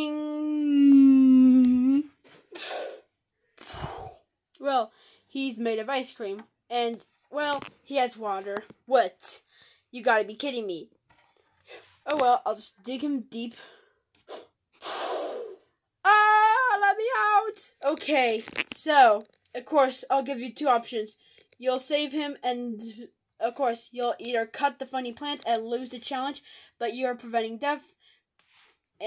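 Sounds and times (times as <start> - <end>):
breathy puffs of air: 2.5 - 4.2, 13.8 - 15.7.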